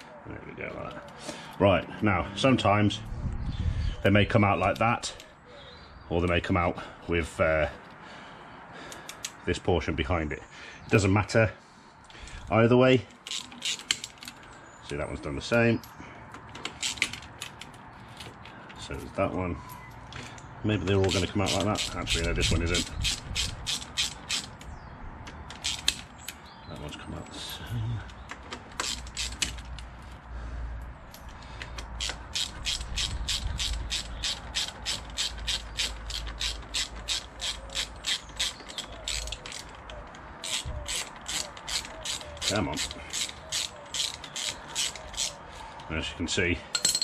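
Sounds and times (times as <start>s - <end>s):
hand ratchet clicking: 13.1s - 14.4s, 16.3s - 18.5s, 21.0s - 26.4s, 28.3s - 29.8s, 31.1s - 45.4s.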